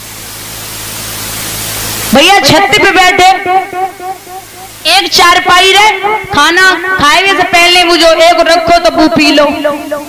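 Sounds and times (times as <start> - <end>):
low electrical hum: 0.0 - 10.0
steady hiss: 0.0 - 10.0
loud amplified voice: 2.1 - 10.0.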